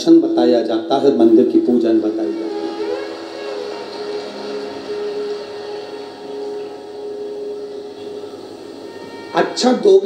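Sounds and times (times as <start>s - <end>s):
audience murmur and hiss: 0.0s - 10.0s
steady held tone: 2.0s - 10.0s.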